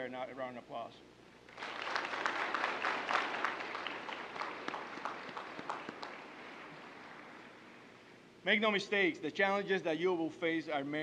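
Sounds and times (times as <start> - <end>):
audience applauding: 1.5 - 7.7.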